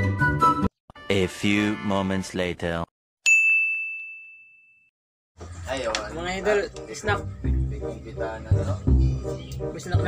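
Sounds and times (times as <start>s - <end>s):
bright bell-like ding: 3.2s - 4.9s.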